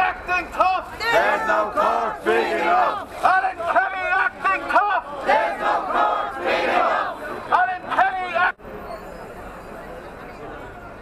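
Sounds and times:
crowd shouting protest chant: 0.0 - 8.6.

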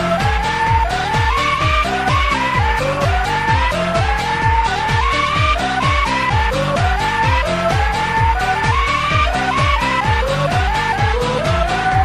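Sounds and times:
electronic dance music: 0.0 - 12.0
kick drum with dropping pitch: 0.0 - 12.0
pitched screaming voice sample: 0.0 - 12.0.

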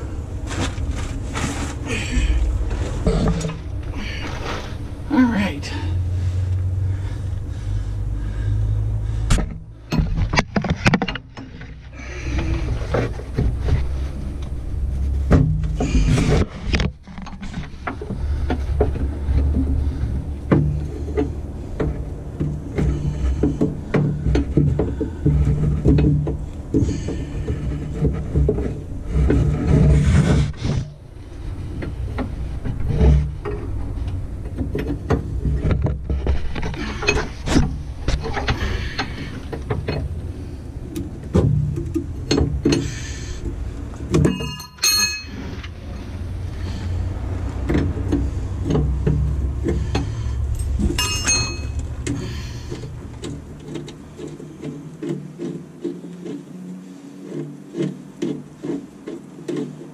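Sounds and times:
steady low hum: 0.0 - 59.9
wrenches clicking and scraping: 0.4 - 59.9
clothing rubbing microphone: 10.4 - 41.2.

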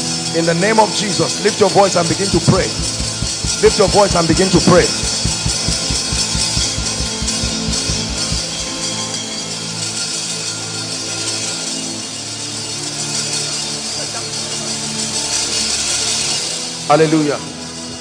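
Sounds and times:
steady drum beat: 2.1 - 8.8
low held chords: 2.2 - 8.8.

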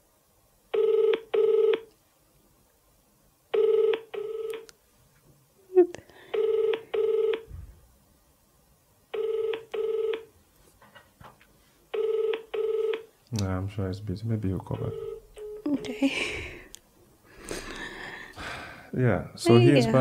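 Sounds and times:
phone ringback tone: 0.7 - 1.9, 3.5 - 4.6, 6.3 - 7.5, 9.1 - 10.3, 11.9 - 13.1, 14.8 - 16.0.

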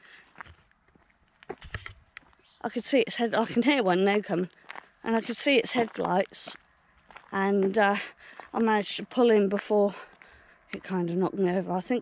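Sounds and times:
footsteps on road: 0.0 - 12.0.

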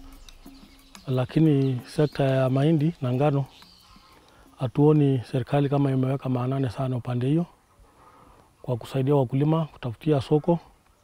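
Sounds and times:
man speaking: 1.1 - 3.5, 4.6 - 7.6, 8.6 - 10.7.

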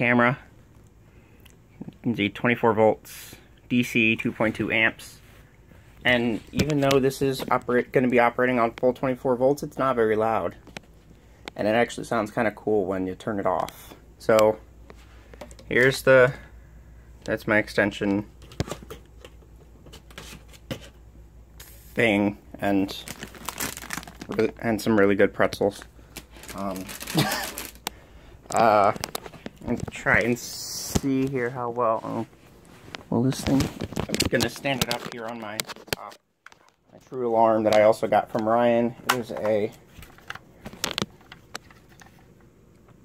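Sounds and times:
faint rustling and handling noise: 0.0 - 43.0
plastic handling clicks and knocks: 15.3 - 15.7, 27.6 - 30.3, 33.4 - 37.0, 37.7 - 43.0.

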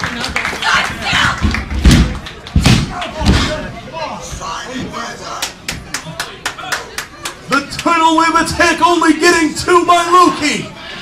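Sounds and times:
crowd clapping rhythmically: 0.0 - 3.2, 5.4 - 8.2.

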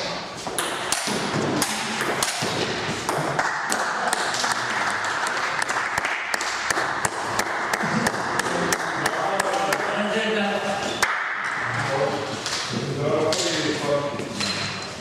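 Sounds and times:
noisy hall background: 0.0 - 15.0.

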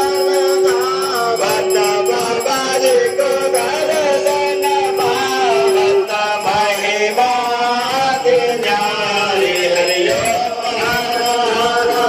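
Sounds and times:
voices chanting: 0.0 - 12.0.

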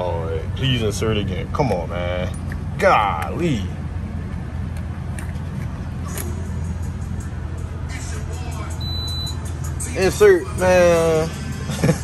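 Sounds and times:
vehicle engine idling: 0.0 - 12.0
fuel pump beep: 8.7 - 9.6.

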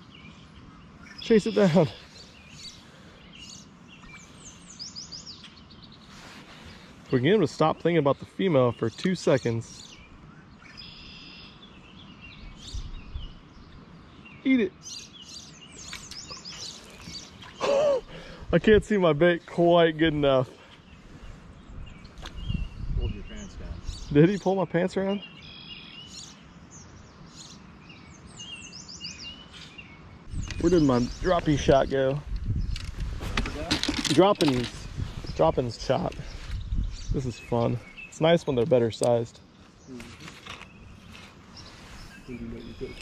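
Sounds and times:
bird chirps: 0.0 - 18.4, 20.4 - 32.9, 34.1 - 43.0
outdoor background noise: 0.0 - 43.0
songbird trill: 0.0 - 43.0.

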